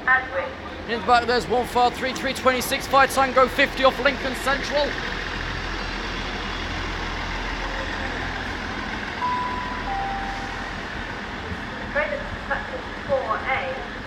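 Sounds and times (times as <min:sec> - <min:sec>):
voices: 0:00.0 - 0:14.0
train rumbling: 0:00.2 - 0:14.0
two-note train horn: 0:09.2 - 0:11.2.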